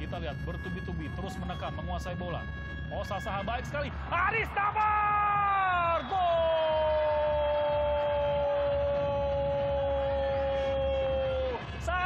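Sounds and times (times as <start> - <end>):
commentator shouting goal: 4.0 - 6.6, 11.8 - 12.0.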